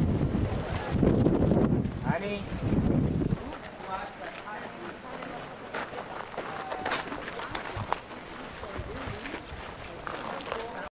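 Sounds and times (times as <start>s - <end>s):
wind buffeting microphone: 0.0s - 4.2s, 7.4s - 10.1s
people talking: 3.4s - 10.9s.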